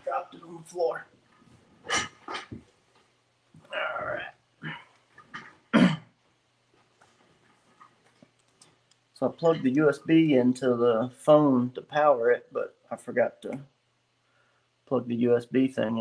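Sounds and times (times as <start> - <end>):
man's throaty vocal noise: 3.6 - 6.0.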